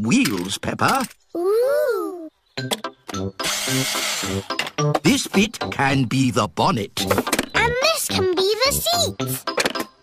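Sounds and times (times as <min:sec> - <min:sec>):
bouncy staccato music: 0:02.6 - 0:10.0.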